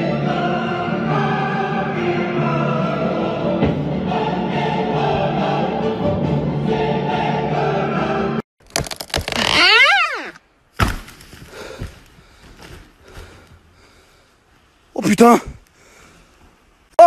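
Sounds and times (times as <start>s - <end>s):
choral music: 0.0s - 8.4s
loud creaking: 8.6s - 10.4s.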